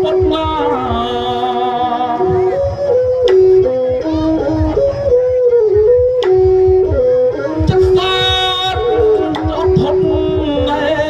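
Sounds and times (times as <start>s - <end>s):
ensemble melody: 0.0s - 11.0s.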